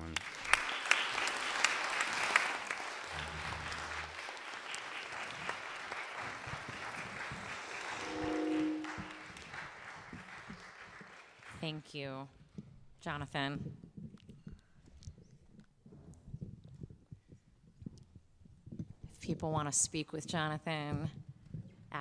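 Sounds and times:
audience applause: 0:00.0 - 0:11.6
brief held tone: 0:07.9 - 0:09.3.

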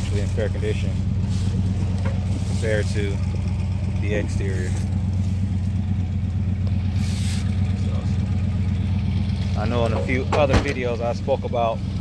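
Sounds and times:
low mechanical drone: 0:00.0 - 0:12.0.

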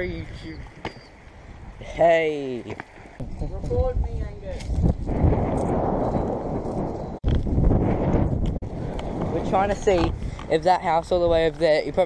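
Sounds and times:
wind rumble on microphone: 0:03.2 - 0:12.0
microphone handling noise: 0:04.5 - 0:10.5.

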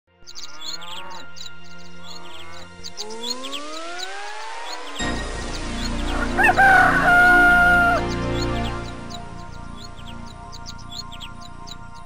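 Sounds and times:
songbirds chirping: 0:00.1 - 0:12.0
rising whistle-like glide: 0:02.3 - 0:09.4.

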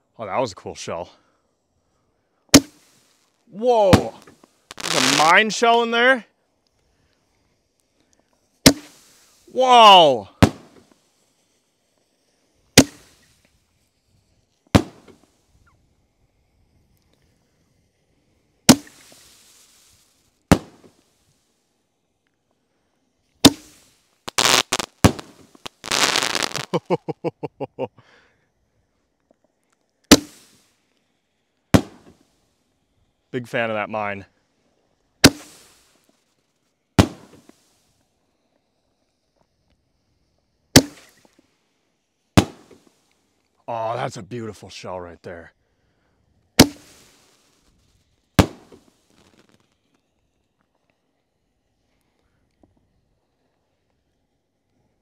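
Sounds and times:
firework shells banging: 0:02.5 - 0:03.0, 0:03.8 - 0:05.9, 0:08.6 - 0:09.4, 0:10.3 - 0:11.1, 0:12.7 - 0:13.4, 0:14.7 - 0:15.3, 0:18.7 - 0:19.5, 0:20.5 - 0:21.0, 0:23.4 - 0:26.9, 0:30.1 - 0:30.6, 0:31.8 - 0:32.2, 0:35.2 - 0:35.9, 0:37.0 - 0:37.6, 0:40.7 - 0:41.4, 0:42.4 - 0:42.9, 0:46.6 - 0:47.5, 0:48.4 - 0:49.7
firework pops and crackles: 0:02.5 - 0:05.9, 0:06.5 - 0:21.5, 0:23.1 - 0:27.2, 0:29.2 - 0:31.0, 0:31.6 - 0:32.4, 0:35.2 - 0:43.6, 0:46.4 - 0:54.2.

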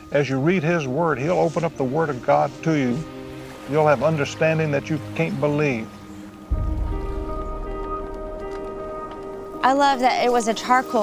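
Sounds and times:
soft held chord music: 0:00.0 - 0:11.0
deep low swell: 0:06.3 - 0:10.7.

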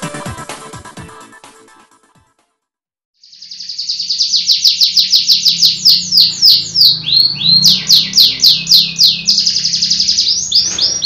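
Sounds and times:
canary singing trill: 0:03.2 - 0:11.0.

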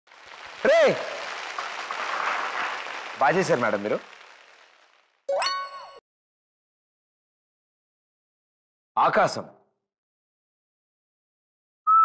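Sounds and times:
audience applauding: 0:00.0 - 0:05.3.

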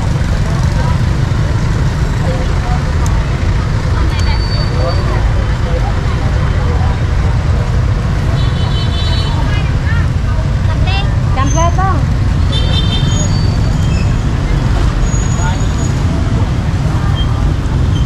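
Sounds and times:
people talking: 0:00.0 - 0:18.0
road traffic rumble: 0:00.0 - 0:18.0.

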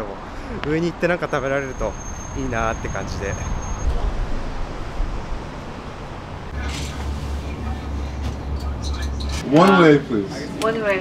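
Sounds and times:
low rumble: 0:02.4 - 0:09.4.

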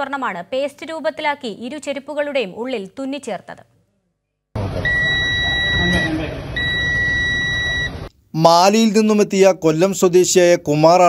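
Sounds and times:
background hubbub: 0:04.6 - 0:08.1
long electronic beeps: 0:04.8 - 0:08.1.

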